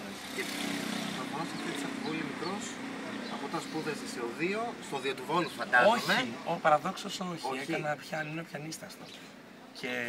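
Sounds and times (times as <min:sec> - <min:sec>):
motor vehicle passing: 0:00.0 - 0:07.6.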